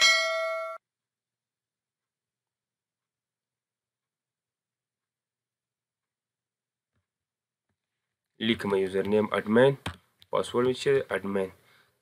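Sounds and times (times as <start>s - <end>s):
notification bell ding: 0.0s - 0.8s.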